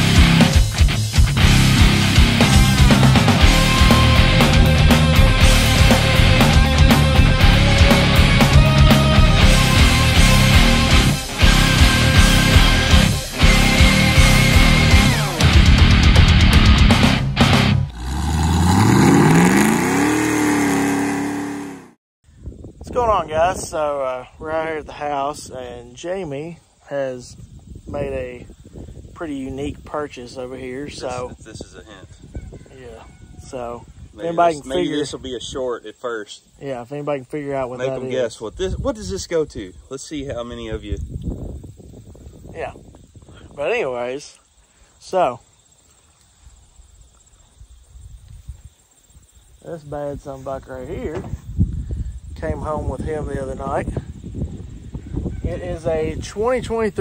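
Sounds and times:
engine revving: 1.4 - 16.0, 16.8 - 22.0
wind buffeting microphone: 22.3 - 25.8, 27.2 - 35.7, 38.4 - 43.9, 50.0 - 57.0.

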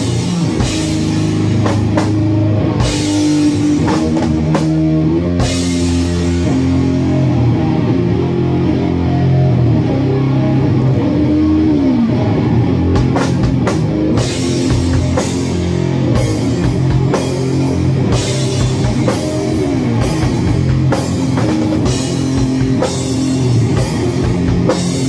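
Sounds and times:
drum kit with cymbal crashes: 0.0 - 7.2, 12.9 - 25.0
distorted electric guitar riff: 0.0 - 25.0.

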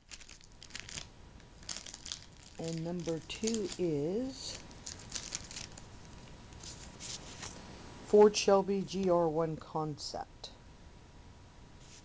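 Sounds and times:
plastic wrapper crinkling: 0.0 - 7.6.

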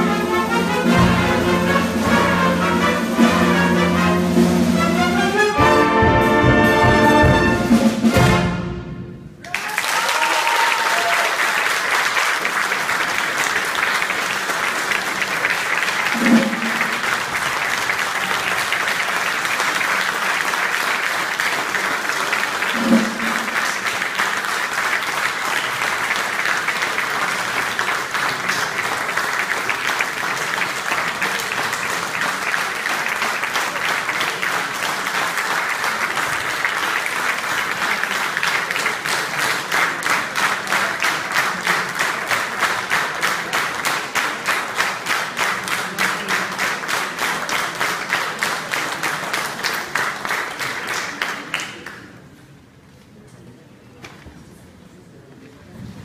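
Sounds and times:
audience applauding: 9.4 - 52.4.

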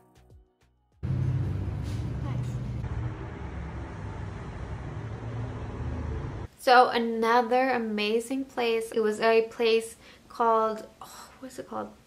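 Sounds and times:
low traffic rumble: 1.0 - 6.5.

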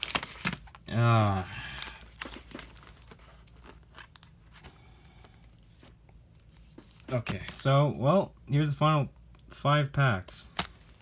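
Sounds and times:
plastic sleeves crinkling: 0.0 - 8.0, 10.2 - 11.0.

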